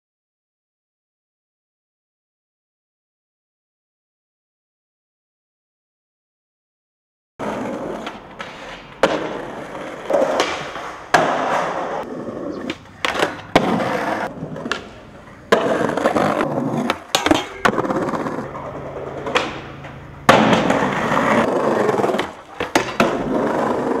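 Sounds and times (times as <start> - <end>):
skateboard clacks: 7.4 - 24.0
skateboard wheels rolling on concrete: 7.4 - 24.0.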